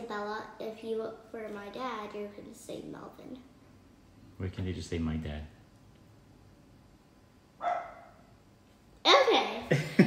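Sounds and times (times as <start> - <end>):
dog bark: 7.6 - 8.3.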